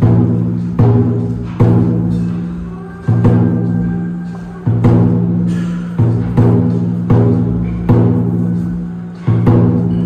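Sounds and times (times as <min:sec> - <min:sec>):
taiko drum hits: 0:00.0 - 0:08.6, 0:09.3 - 0:10.0.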